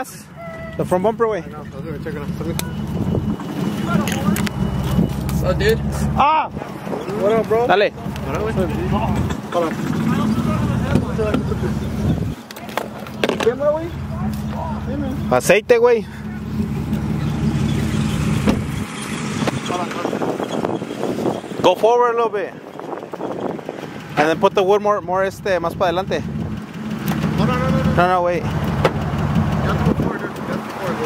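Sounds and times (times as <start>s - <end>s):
car engine idling: 0.0s - 31.0s.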